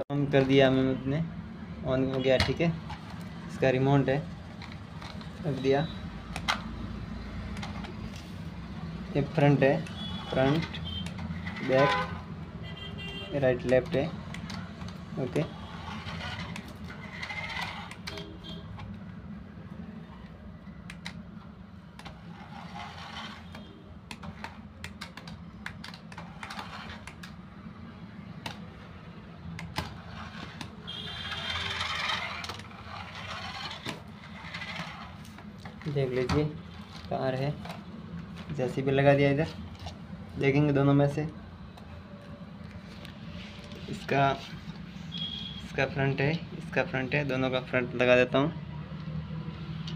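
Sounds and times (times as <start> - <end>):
toy car electric motor whirring: 10.0 - 11.9, 15.4 - 18.6, 22.0 - 23.7, 26.2 - 27.2, 29.8 - 35.3.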